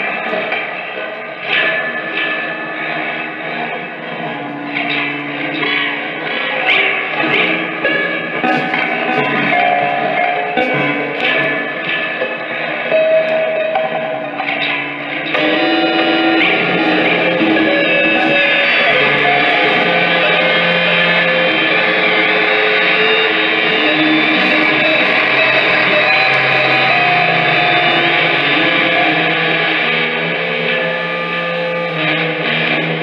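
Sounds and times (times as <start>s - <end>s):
electric guitar drone: 0.0s - 33.0s.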